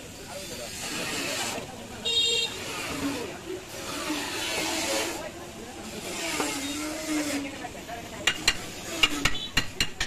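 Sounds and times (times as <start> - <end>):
indistinct background voices: 0.0 - 10.0
street and traffic hiss: 0.0 - 10.0.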